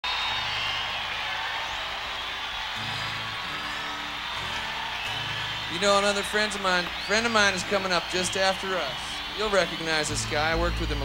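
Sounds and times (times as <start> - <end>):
crowd noise: 0.0 - 11.0
country-rock band playing live: 2.8 - 11.0.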